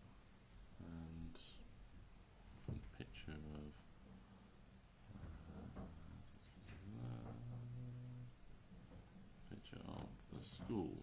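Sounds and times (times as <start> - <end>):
man's low hmm: 5.2 - 8.4.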